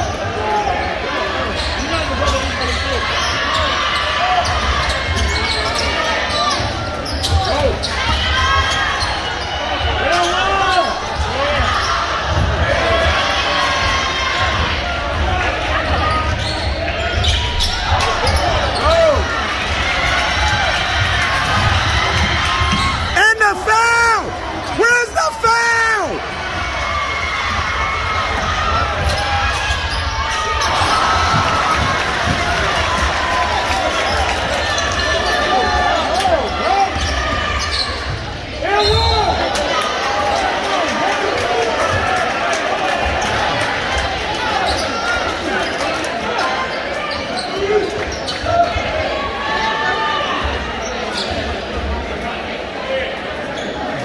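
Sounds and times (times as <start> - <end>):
players and fans voices: 0.0 - 54.0.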